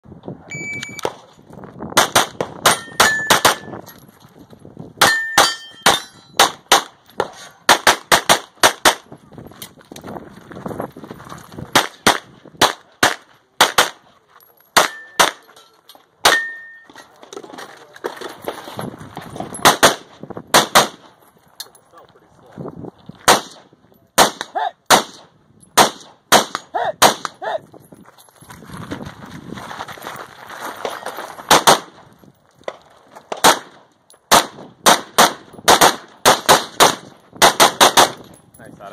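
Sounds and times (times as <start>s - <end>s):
high rings: 0.5s - 1.0s, 16.3s - 17.0s
gunshots: 2.0s - 3.7s, 5.0s - 9.1s, 11.7s - 14.0s, 14.8s - 15.4s, 19.6s - 21.1s, 23.2s - 27.4s, 31.5s - 32.0s, 33.3s - 38.2s
rifle firing: 19.6s - 21.0s, 23.3s - 23.6s, 33.4s - 38.2s.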